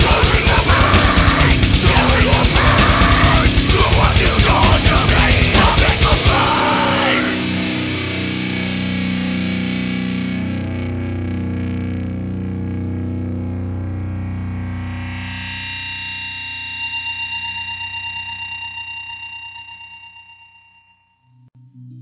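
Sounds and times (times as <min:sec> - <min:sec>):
distorted electric guitar chord ringing: 0:00.0 - 0:22.0
pulsing effect-laden guitar tone: 0:00.0 - 0:22.0.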